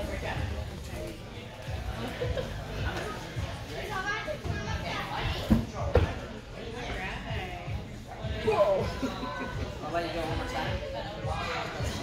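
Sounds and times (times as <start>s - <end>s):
children's voices and chatter: 0.0s - 12.0s.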